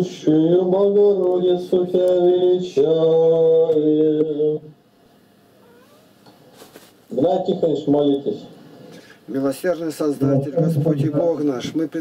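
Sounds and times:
faint wavering animal call: 0:05.6 - 0:06.1
clothing rustle: 0:06.4 - 0:07.1.

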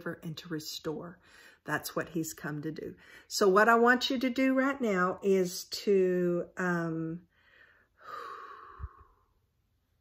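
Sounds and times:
woman sighing: 0:08.0 - 0:09.3.

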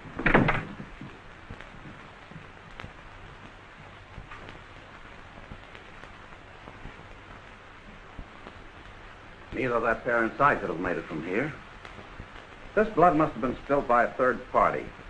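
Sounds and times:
film soundtrack hiss: 0:00.0 - 0:15.0
door banging shut: 0:00.2 - 0:00.9
faint clicks: 0:00.2 - 0:09.7, 0:10.9 - 0:12.8.

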